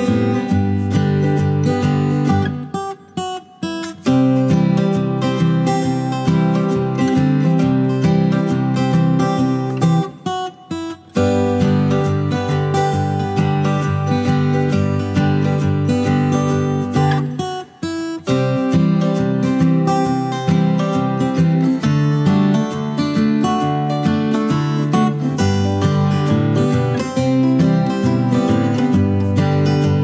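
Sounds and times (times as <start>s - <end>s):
strummed acoustic guitar music: 0.0s - 30.0s.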